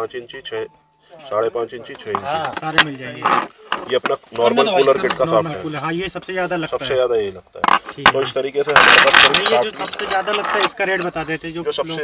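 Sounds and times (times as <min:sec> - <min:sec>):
metal shafts clinking: 0:02.0 - 0:03.0, 0:08.7 - 0:11.2.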